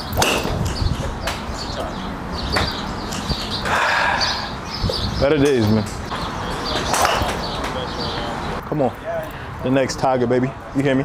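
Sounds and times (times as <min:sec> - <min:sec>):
birds chirping: 0:00.0 - 0:11.0
outdoor background noise: 0:00.0 - 0:11.0.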